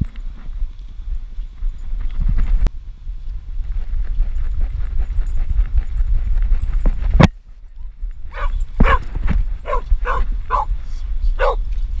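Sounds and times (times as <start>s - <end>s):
low rumble: 0.0s - 12.0s
dog barking: 8.3s - 10.7s, 11.4s - 11.6s.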